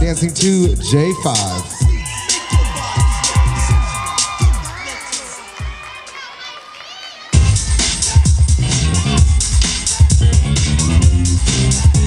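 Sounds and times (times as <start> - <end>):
hip-hop music track: 0.0 - 6.2, 7.4 - 12.0.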